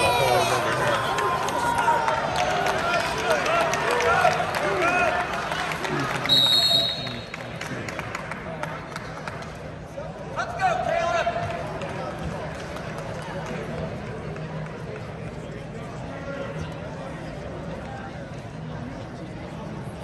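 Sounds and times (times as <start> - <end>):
arena hubbub: 0.0 - 20.0
referee's whistle blast: 6.3 - 7.3.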